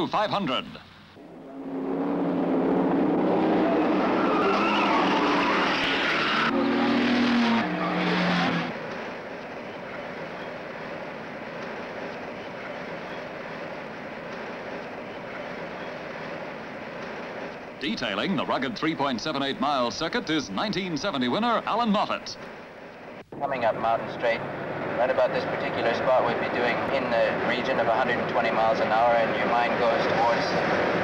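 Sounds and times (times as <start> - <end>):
engine and road drone in cabin: 1.1 - 17.8, 23.9 - 31.0
racing car engines revving: 1.2 - 12.0, 23.7 - 31.0.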